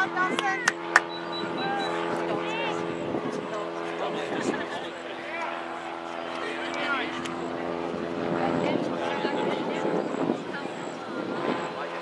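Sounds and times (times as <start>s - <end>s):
players shouting: 0.0s - 2.9s, 5.0s - 5.9s
steady droning hum: 0.0s - 12.0s.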